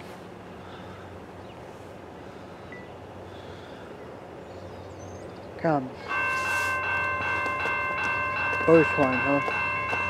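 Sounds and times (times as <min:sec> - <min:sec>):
railroad crossing bell clanging: 0:06.0 - 0:10.0.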